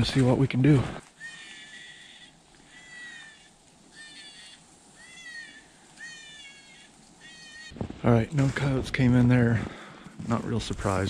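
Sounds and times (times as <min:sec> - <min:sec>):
predator call distress cries: 0:01.0 - 0:08.0.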